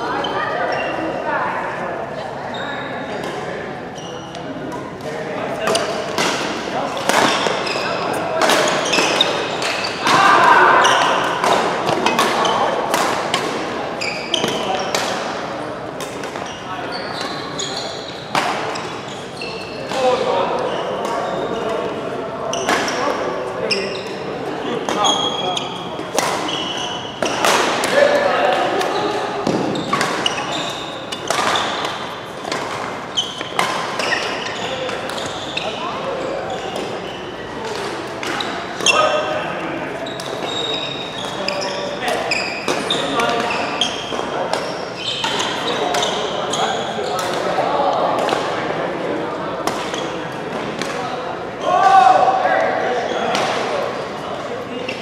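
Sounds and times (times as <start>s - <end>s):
sports shoes squeaking: 0.0s - 1.1s, 3.9s - 4.8s, 5.6s - 12.8s, 13.9s - 15.1s, 16.1s - 37.8s, 38.4s - 39.3s, 39.9s - 47.4s
rackets hitting shuttlecock: 4.6s - 15.4s, 24.9s - 35.8s, 49.6s - 51.1s.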